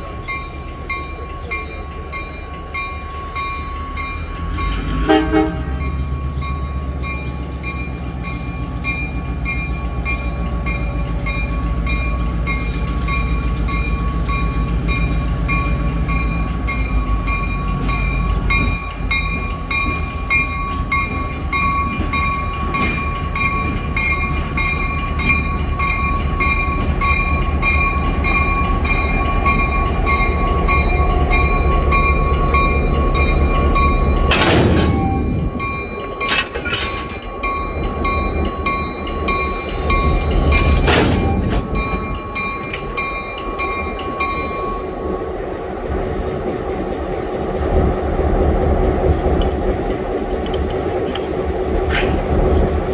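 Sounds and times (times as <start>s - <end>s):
locomotive bell ringing: 0.0s - 45.8s
diesel locomotive engine rumble: 0.0s - 52.9s.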